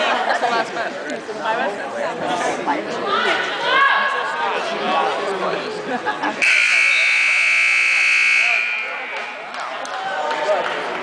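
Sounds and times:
crowd voices: 0.0s - 11.0s
scoreboard buzzer: 6.4s - 9.4s.

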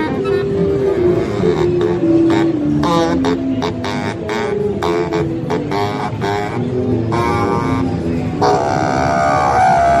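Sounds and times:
baritone saxophone notes: 0.0s - 10.0s.

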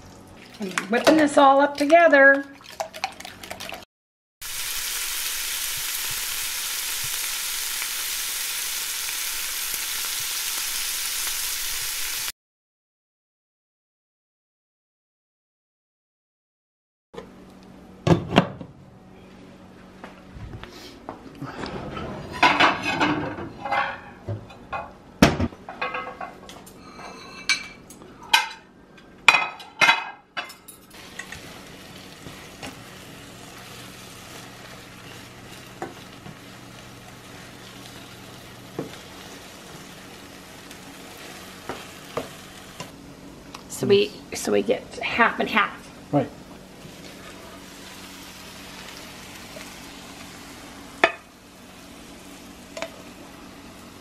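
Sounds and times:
food sizzling in a skillet: 4.4s - 12.3s, 30.9s - 42.9s, 46.7s - 54.0s
glass lid and utensils clattering: 22.0s - 24.2s.

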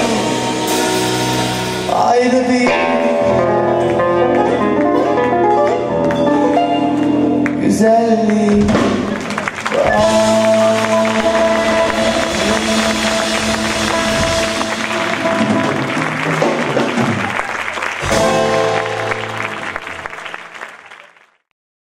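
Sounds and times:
latin band sustained chord: 0.0s - 7.5s, 9.8s - 20.5s
audience applause: 8.3s - 21.5s.

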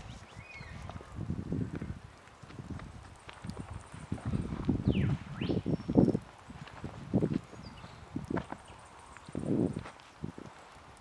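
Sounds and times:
faint high bird calls: 0.0s - 1.2s, 3.2s - 6.1s
footsteps on bark mulch: 0.0s - 11.0s.

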